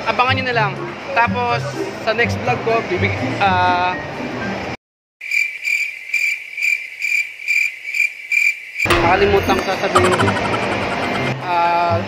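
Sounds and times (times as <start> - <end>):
cricket chirping: 5.2 - 8.9.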